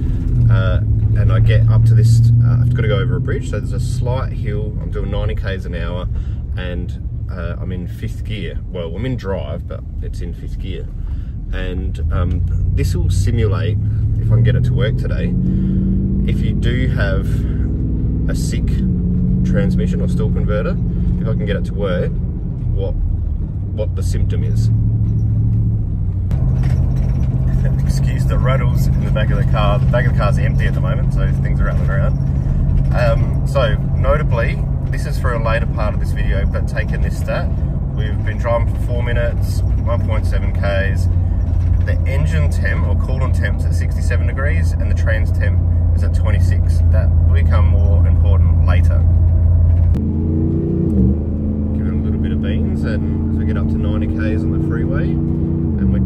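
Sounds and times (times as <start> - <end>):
car engine and road drone: 0.0 - 56.0.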